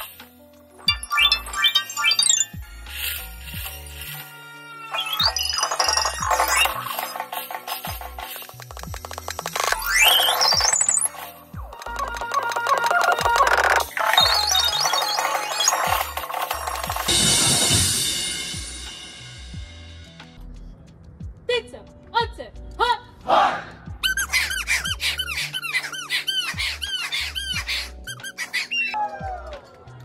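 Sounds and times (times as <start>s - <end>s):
fast marimba runs: 0.9s - 2.5s, 5.2s - 17.8s
synthesizer bass line: 11.6s - 17.1s
cymbal crash: 17.1s - 20.2s.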